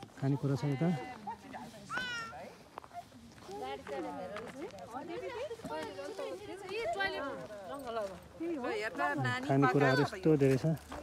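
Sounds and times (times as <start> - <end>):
voices chatting: 0.0 - 11.0.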